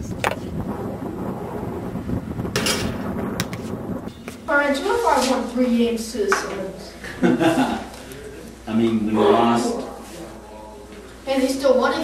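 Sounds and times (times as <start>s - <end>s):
wind buffeting microphone: 0.0s - 5.1s.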